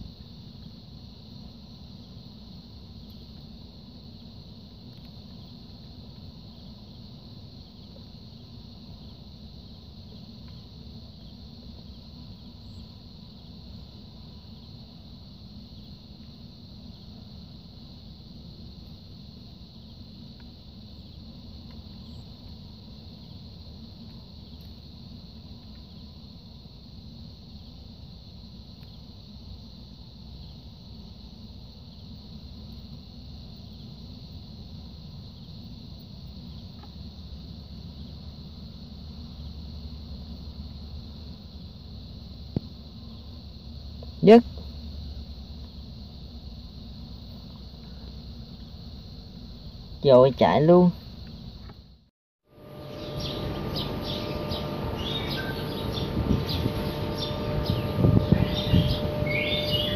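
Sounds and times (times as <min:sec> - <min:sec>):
crickets chirping: 0:00.0 - 0:59.9
low background rumble: 0:51.4 - 0:59.9.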